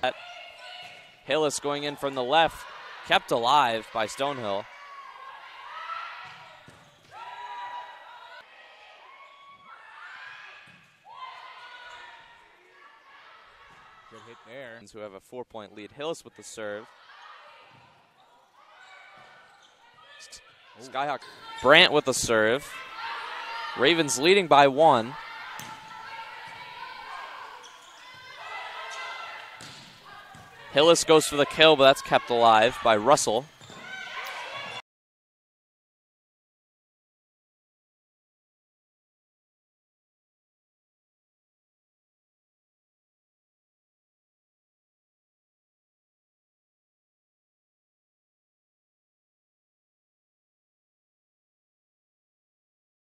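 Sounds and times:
players calling out: 0.0s - 8.4s, 18.8s - 34.8s
distant voices in gym: 0.0s - 34.8s
volleyball strike: 25.1s - 31.6s.

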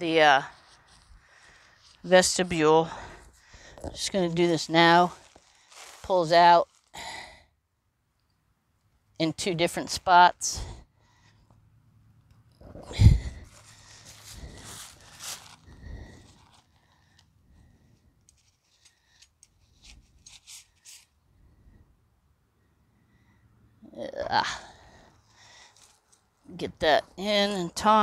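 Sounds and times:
tent fabric rustling and scraping: 5.0s - 6.9s, 12.7s - 16.8s, 18.4s - 21.1s
scuffing: 13.6s - 15.6s.

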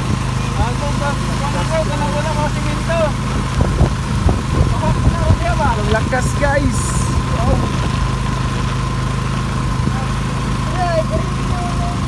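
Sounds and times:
heavy rain hissing: 0.0s - 12.0s
low motor hum: 0.0s - 12.0s.

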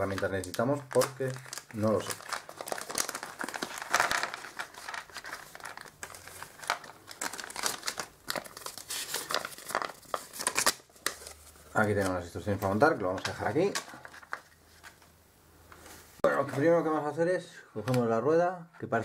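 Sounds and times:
plastic bag crinkling: 0.0s - 15.0s.

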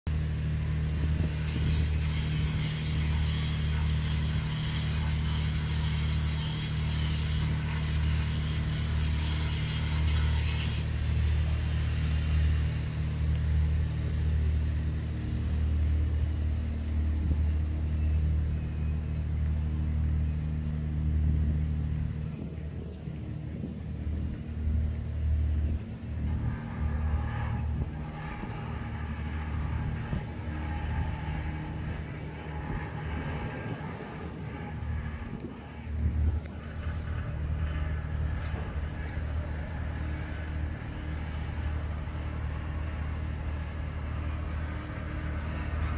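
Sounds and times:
large engine humming: 0.0s - 45.9s.

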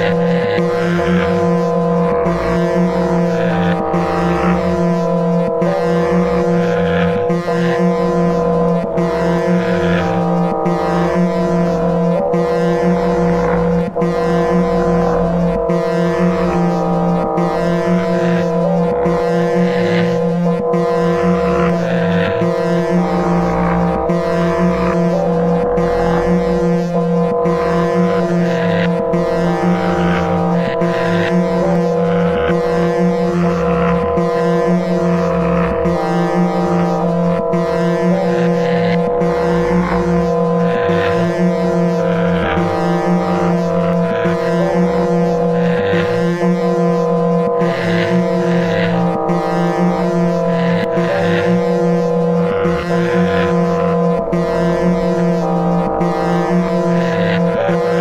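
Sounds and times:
electronic music with drone: 0.0s - 58.0s.

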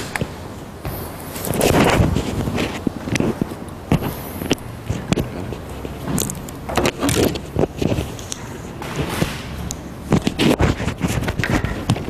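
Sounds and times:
microphone handling noise: 0.0s - 12.0s.

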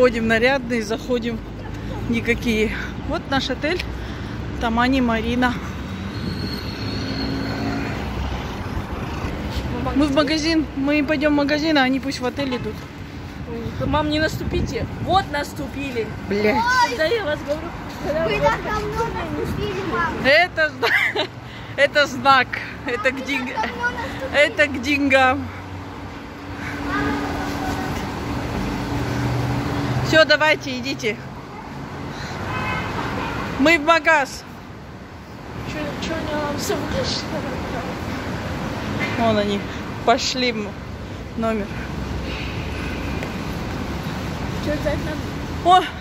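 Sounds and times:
city street traffic: 0.0s - 46.0s.

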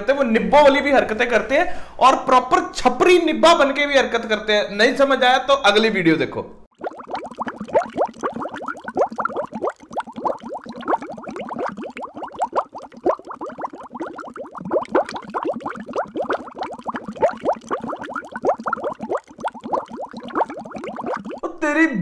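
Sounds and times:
muffled bubbling plops: 6.7s - 21.5s.

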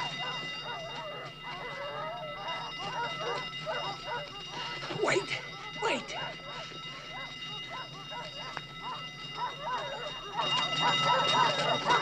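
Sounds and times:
dogs barking and yelping: 0.0s - 12.0s.

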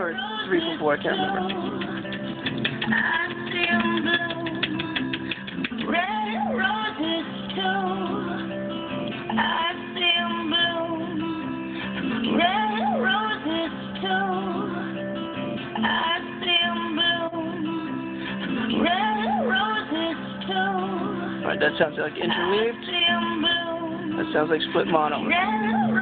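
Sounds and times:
person singing: 0.0s - 26.0s
strummed guitar: 0.0s - 26.0s.

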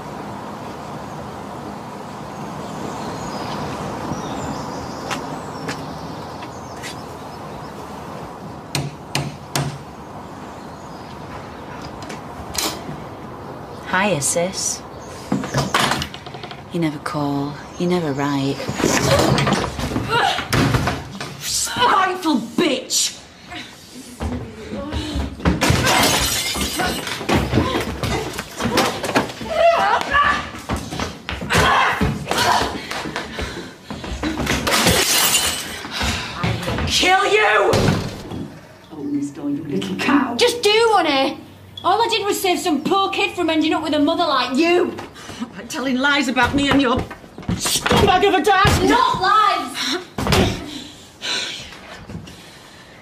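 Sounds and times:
traffic rumble: 0.0s - 53.0s
glass smashing and shattering: 25.7s - 27.5s, 34.7s - 35.9s.

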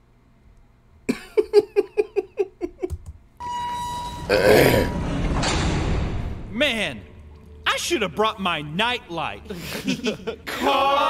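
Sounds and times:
man laughing: 1.1s - 3.0s, 9.4s - 11.0s.

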